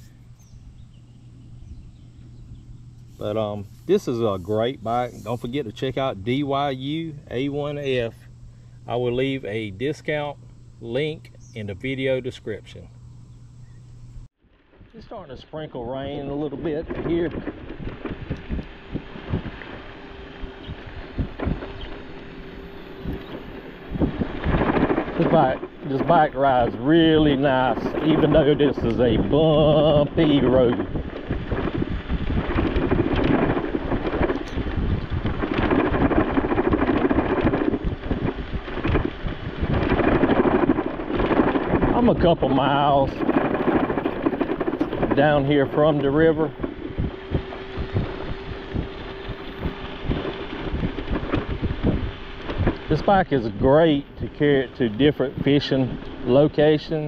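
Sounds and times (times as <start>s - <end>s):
wind noise on microphone: 0.0s - 12.8s, 13.6s - 57.0s
steady low hum: 0.0s - 57.0s
man speaking: 3.2s - 8.2s, 8.9s - 12.9s, 15.0s - 17.4s, 25.2s - 30.8s, 42.0s - 43.2s, 45.0s - 46.6s, 52.9s - 57.0s
bike rattling over bumps: 14.6s - 57.0s
tyres crunching on gravel: 16.0s - 57.0s.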